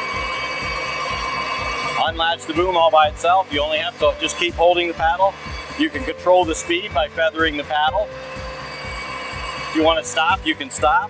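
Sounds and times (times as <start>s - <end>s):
low repeating pulse: 0.0s - 10.5s
crane hydraulics whining: 0.0s - 11.0s.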